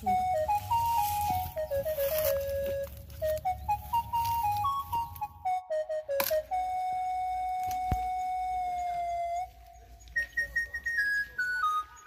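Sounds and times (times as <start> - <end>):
flute-like melody: 0.0 - 12.0.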